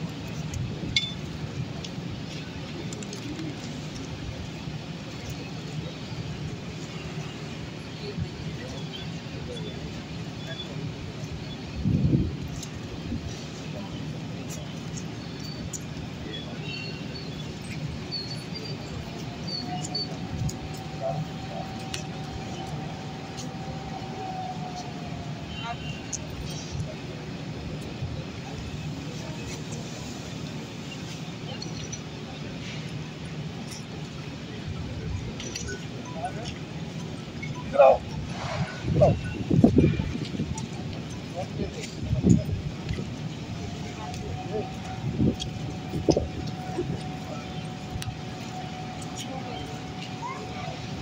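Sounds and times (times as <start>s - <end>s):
faint whine: 0.0s - 51.0s
traffic rumble: 0.0s - 51.0s
indistinct voices: 1.7s - 51.0s.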